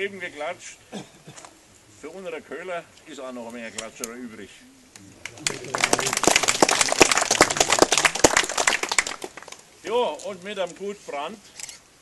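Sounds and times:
audience applauding: 0:05.2 - 0:09.6.

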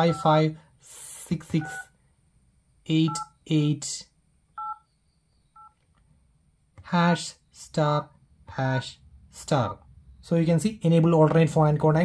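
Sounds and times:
phone keypad touch-tone beeps: 0:01.6 - 0:01.9, 0:04.6 - 0:04.9.

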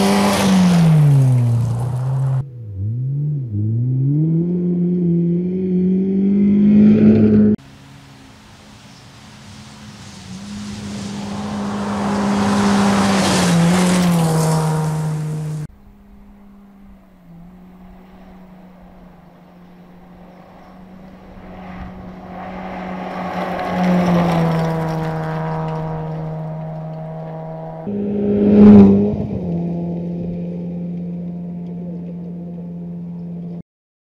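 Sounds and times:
rally car engine passing: 0:00.0 - 0:33.6.

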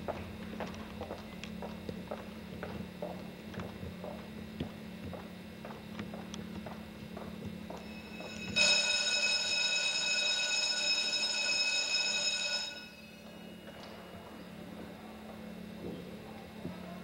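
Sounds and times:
electric bell ringing: 0:07.8 - 0:13.6.

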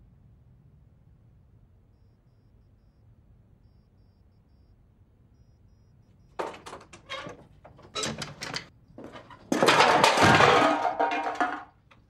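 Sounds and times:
loud clatter of sharp knocks: 0:06.4 - 0:11.8.

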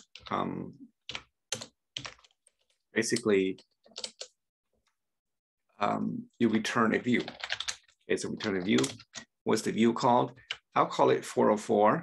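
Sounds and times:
computer keyboard typing: 0:00.0 - 0:00.4, 0:01.0 - 0:04.4, 0:07.0 - 0:09.3.

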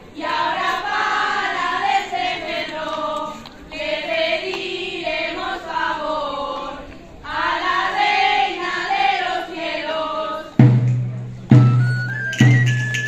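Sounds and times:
women singing folk song: 0:00.1 - 0:10.7.

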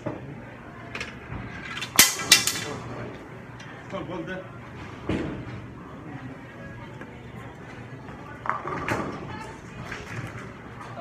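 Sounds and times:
low room chatter: 0:00.0 - 0:11.0.

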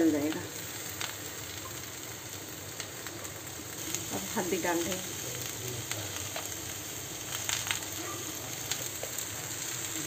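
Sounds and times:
vegetables sizzling in oil: 0:00.0 - 0:10.0.

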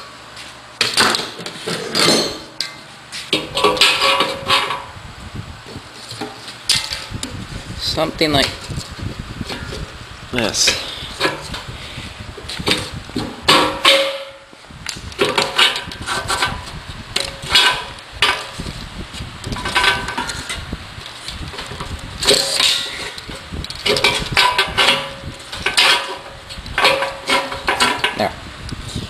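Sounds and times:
metal parts knocking and clinking: 0:00.8 - 0:04.9, 0:19.5 - 0:20.6, 0:21.5 - 0:28.3.

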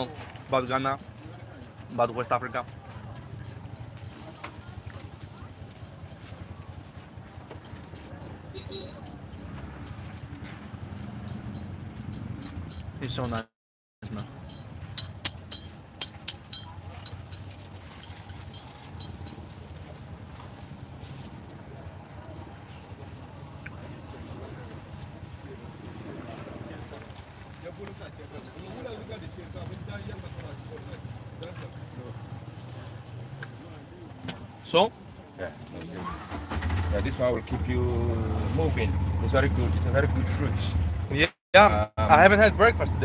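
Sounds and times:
bright metallic clinks: 0:00.0 - 0:06.8, 0:07.6 - 0:13.0, 0:14.0 - 0:19.6
vehicle engine rumbling: 0:00.0 - 0:43.0.

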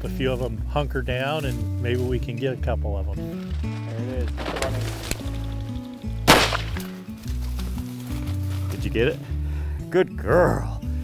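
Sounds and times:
background music: 0:00.0 - 0:11.0
shotgun shot with echo: 0:06.2 - 0:07.0.

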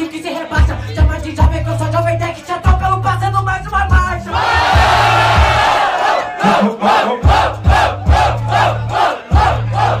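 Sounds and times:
hip-hop beat bass and kick drum: 0:00.0 - 0:10.0
crowd chanting in unison: 0:04.3 - 0:10.0.

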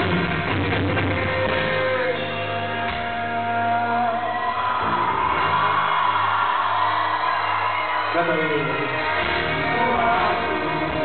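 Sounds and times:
acoustic rock band final notes: 0:00.0 - 0:11.0
concert crowd cheering and whooping: 0:03.2 - 0:11.0.

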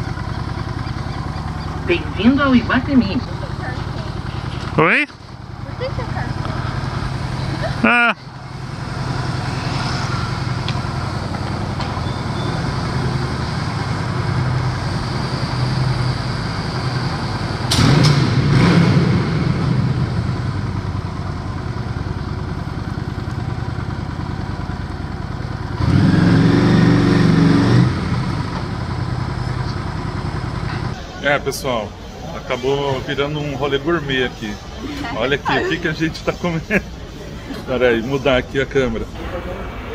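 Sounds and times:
motorcycle engine running: 0:00.0 - 0:35.8.

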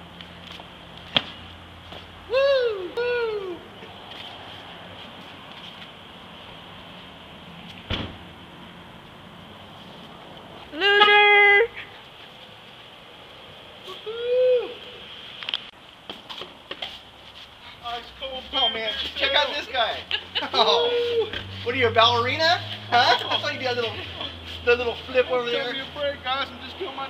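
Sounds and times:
person hooting: 0:02.3 - 0:03.8, 0:13.8 - 0:15.0, 0:20.6 - 0:21.4.

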